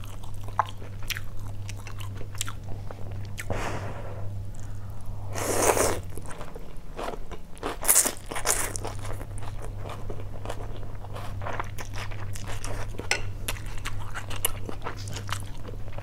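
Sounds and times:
person slurping noodles: 0:05.3 - 0:06.0.

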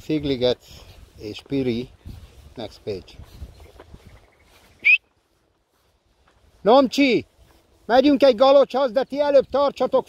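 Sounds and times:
faint outdoor background: 0:00.0 - 0:10.0
high rising whistle: 0:04.8 - 0:05.0.

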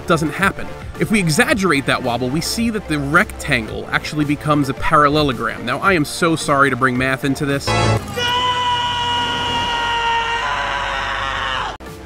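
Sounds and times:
man screaming: 0:08.0 - 0:11.8.

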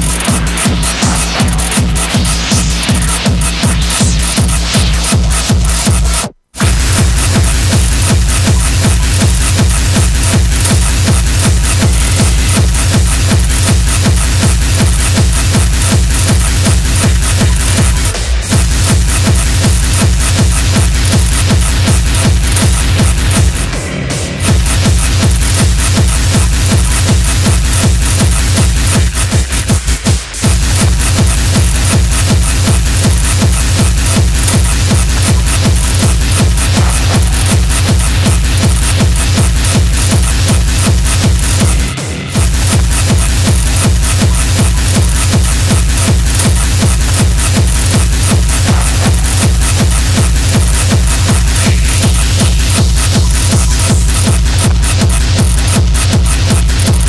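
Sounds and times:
dense high percussion: 0:00.0 - 0:57.0
driving kick drum: 0:00.0 - 0:57.0
hard techno music: 0:00.0 - 0:57.0.

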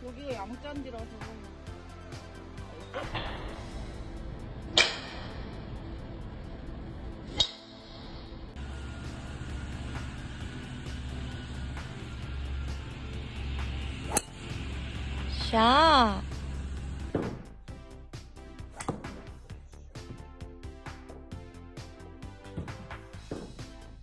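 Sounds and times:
golf club striking ball: 0:14.1 - 0:14.5, 0:18.8 - 0:19.3.

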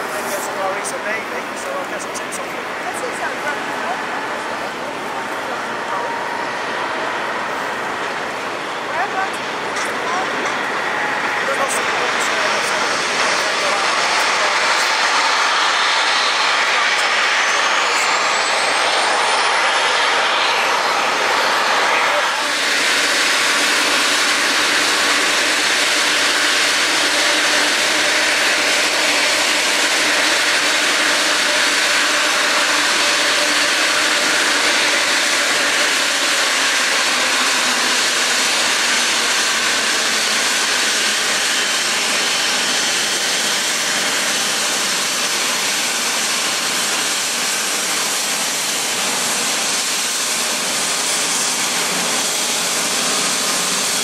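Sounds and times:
jet engines at taxi power: 0:00.0 - 0:54.0
thin high whine rising in pitch: 0:03.7 - 0:44.6.

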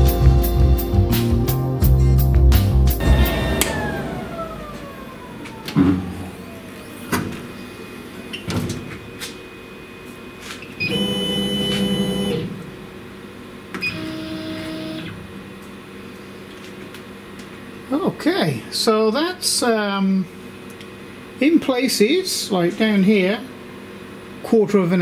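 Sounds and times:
tone sliding down: 0:03.0 - 0:07.7
stepper motors whining: 0:03.0 - 0:08.6, 0:10.8 - 0:12.7.

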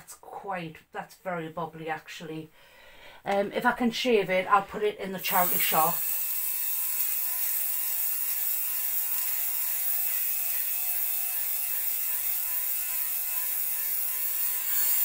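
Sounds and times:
electric lint remover motor hum: 0:05.2 - 0:15.0.

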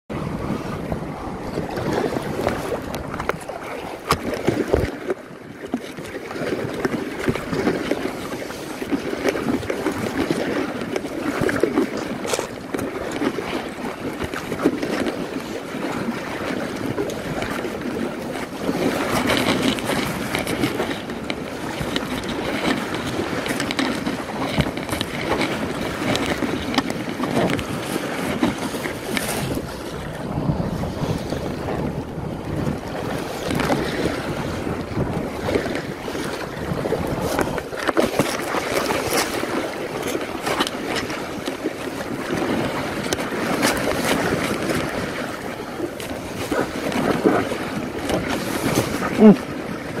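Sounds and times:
water slapping against a raft: 0:00.1 - 0:50.0
wind buffeting microphone: 0:00.1 - 0:50.0.

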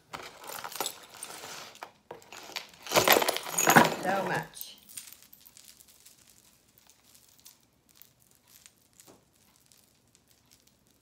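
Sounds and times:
beaded jewelry clicking: 0:04.8 - 0:11.0.

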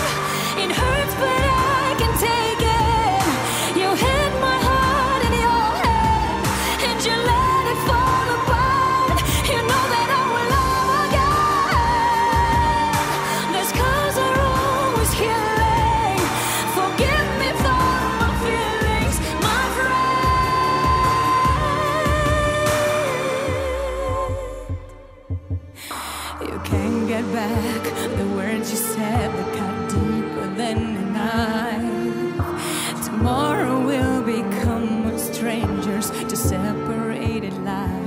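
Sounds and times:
woman singing pop ballad: 0:00.0 - 0:38.0.

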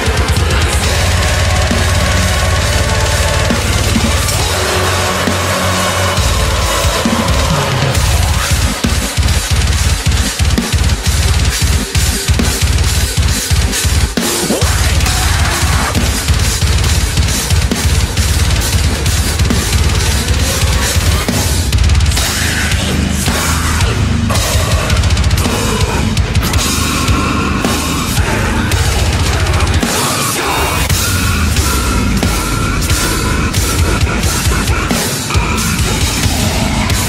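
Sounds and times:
heavy metal guitars: 0:00.0 - 0:37.0
heavy metal music: 0:00.0 - 0:37.0
rapid double-bass kick drum: 0:00.0 - 0:37.0.

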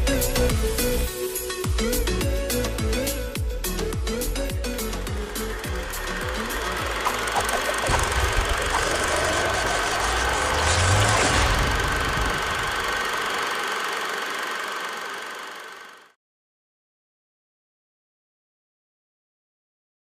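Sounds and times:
rushing swell: 0:05.4 - 0:13.4
descending drum hits: 0:06.8 - 0:12.8.

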